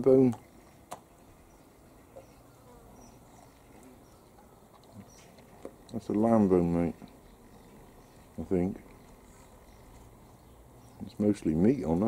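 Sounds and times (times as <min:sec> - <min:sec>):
insect buzzing: 0:00.9 - 0:04.7.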